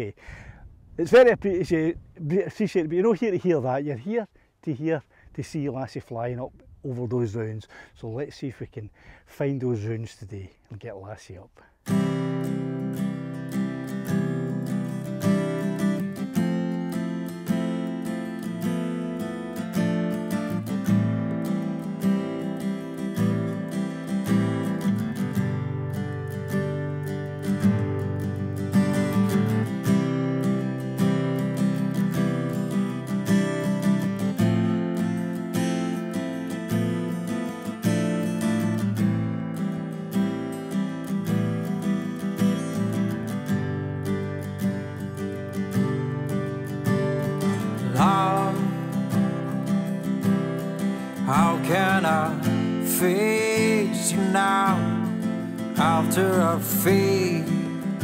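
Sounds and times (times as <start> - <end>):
strummed acoustic guitar: 11.7 - 58.0
person singing: 47.4 - 49.6, 51.1 - 58.0.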